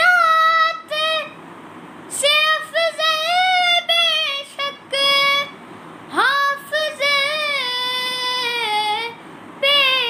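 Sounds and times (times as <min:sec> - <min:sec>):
boy singing unaccompanied: 0:00.0 - 0:01.4, 0:02.1 - 0:10.0.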